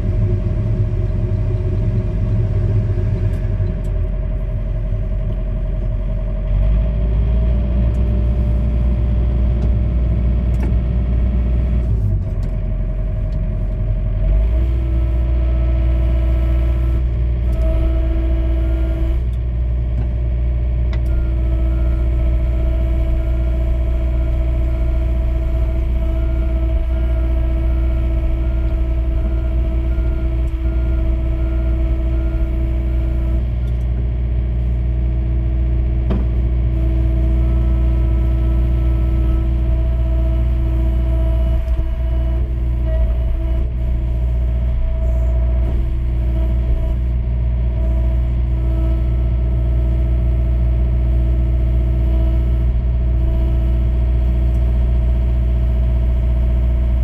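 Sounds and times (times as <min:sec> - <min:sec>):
excavator diesel engine running: 0:00.0 - 0:57.0.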